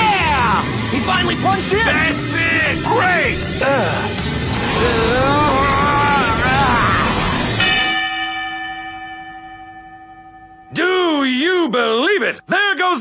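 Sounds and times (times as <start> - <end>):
drawn-out shout: 0.0 - 7.7
boxing ring bell: 7.6 - 10.9.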